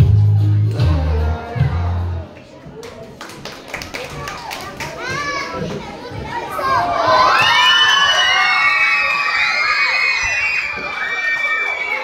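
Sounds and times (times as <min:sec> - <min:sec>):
children shouting and cheering: 0:03.7 - 0:12.0.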